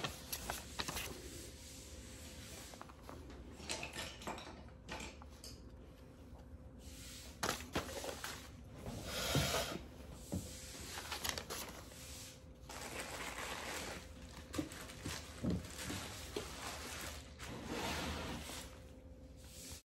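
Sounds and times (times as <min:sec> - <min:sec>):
paper rustling: 0:00.0 - 0:03.3, 0:10.6 - 0:18.8.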